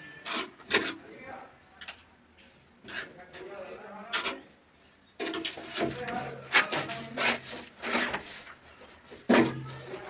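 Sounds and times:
plastic scraping on plastic: 5.2s - 10.0s.

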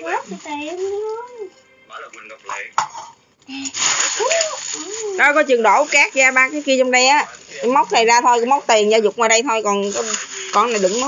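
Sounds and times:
plastic bag crinkling: 0.0s - 1.6s, 3.5s - 11.0s.

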